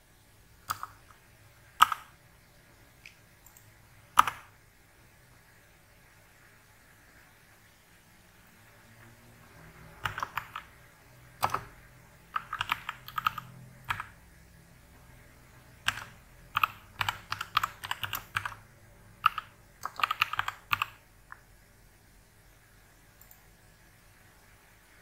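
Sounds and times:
computer keyboard typing: 0.6 - 2.2, 3.4 - 4.6, 10.0 - 14.2, 15.7 - 21.4.

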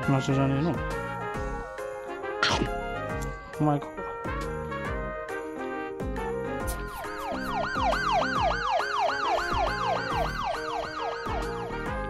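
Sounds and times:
light background music: 0.0 - 12.0
police siren yelping: 6.8 - 12.0.

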